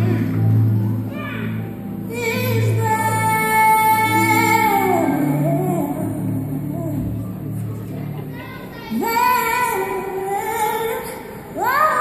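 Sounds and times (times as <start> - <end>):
band playing sustained chords: 0.0 - 10.3
woman singing: 2.0 - 7.6, 8.9 - 12.0.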